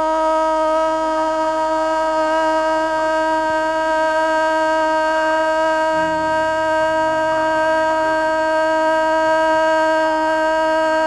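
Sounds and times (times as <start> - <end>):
woman singing a long note: 0.0 - 11.0.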